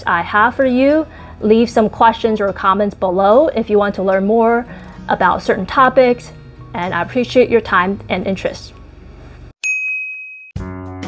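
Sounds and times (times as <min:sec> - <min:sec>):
high-pitched ding: 0:09.6 - 0:10.6.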